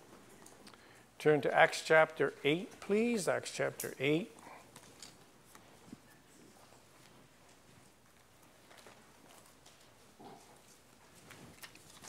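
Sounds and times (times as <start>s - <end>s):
paper rustling and pages turning: 4.7s - 12.0s.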